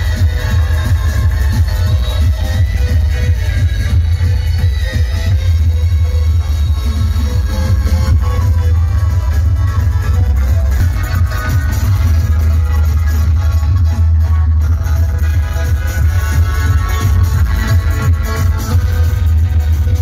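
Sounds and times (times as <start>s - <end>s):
electronic dance music heavy bass: 0.0s - 20.0s.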